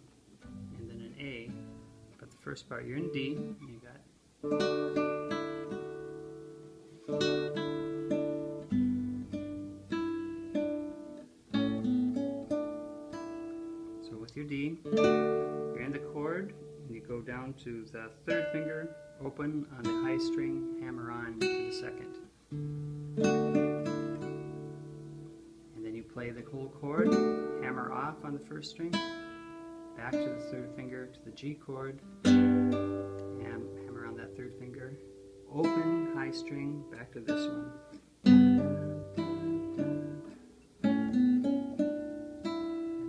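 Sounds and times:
acoustic guitar chord riff: 0:00.0 - 0:43.0.

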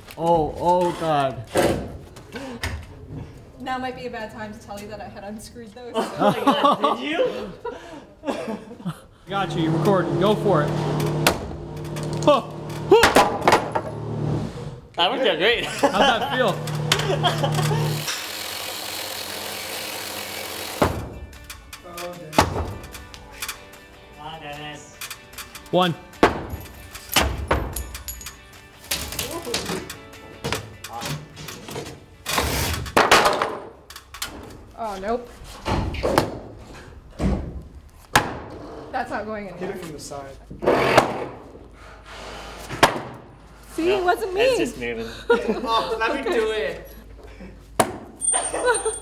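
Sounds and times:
chainsaw cutting wood: 0:09.6 - 0:14.5, 0:16.4 - 0:21.1.

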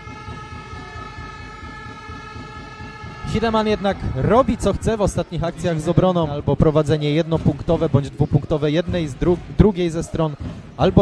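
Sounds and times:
sustained horn blare: 0:00.0 - 0:06.2
arena crowd rumble: 0:00.0 - 0:11.0.

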